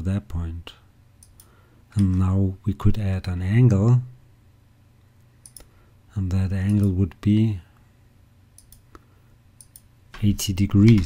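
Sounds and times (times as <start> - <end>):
computer mouse clicks: 1.2 - 2.2, 5.4 - 5.7, 8.6 - 9.0, 9.6 - 11.0.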